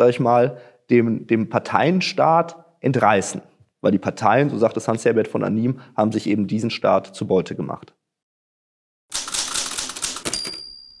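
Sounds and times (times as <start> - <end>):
typewriter key clacks: 9.1 - 11.0
typewriter bell ding: 9.2 - 11.0.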